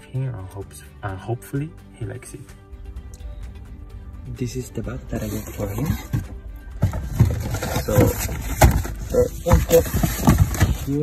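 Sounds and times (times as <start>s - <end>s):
background music: 0.0s - 11.0s
man speaking: 4.3s - 6.2s.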